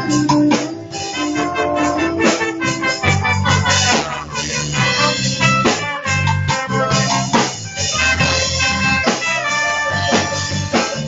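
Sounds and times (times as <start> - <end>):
drum strikes: 0.0 - 11.0
heavy bass line: 0.0 - 11.0
live reggae band playing: 0.0 - 11.0.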